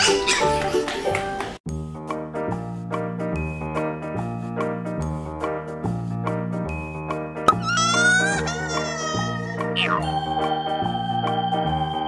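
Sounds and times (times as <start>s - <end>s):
doll electronic baby crying: 7.5s - 10.1s.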